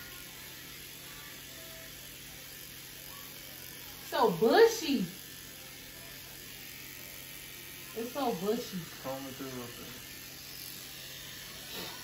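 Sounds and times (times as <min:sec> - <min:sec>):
electric hair clippers buzzing: 0:00.0 - 0:12.0.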